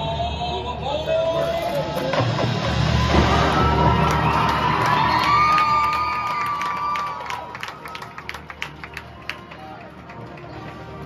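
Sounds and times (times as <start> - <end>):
marching band playing: 1.4 - 11.0
crowd cheering: 2.1 - 11.0.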